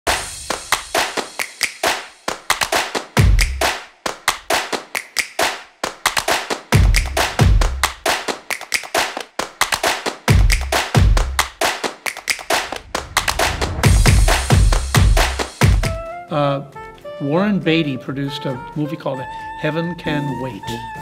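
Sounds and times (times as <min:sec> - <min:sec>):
rapid clap-like percussion hits: 0:00.1 - 0:16.0
deep bass notes: 0:12.6 - 0:16.0.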